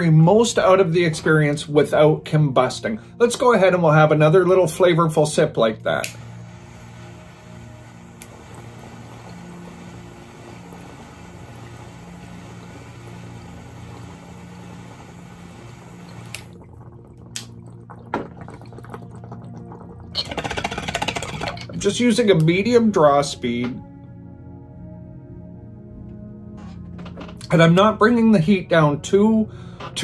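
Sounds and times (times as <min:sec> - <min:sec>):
quiet background music: 0:00.0 - 0:30.0
torch flame hissing: 0:05.9 - 0:16.6
bong water bubbling: 0:10.6 - 0:21.8.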